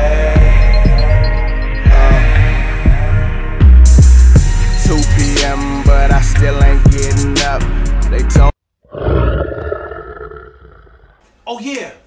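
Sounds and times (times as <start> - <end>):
lion roaring: 8.8 - 11.2.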